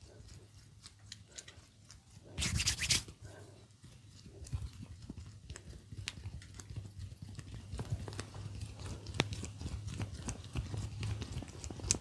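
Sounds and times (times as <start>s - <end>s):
oily fingers rubbing an ear: 2.4s - 3.1s.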